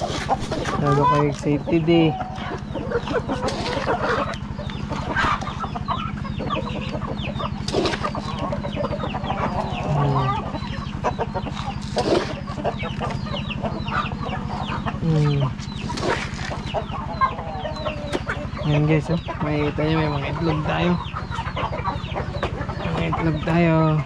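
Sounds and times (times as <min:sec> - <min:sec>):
hens clucking: 0:00.0 - 0:24.0.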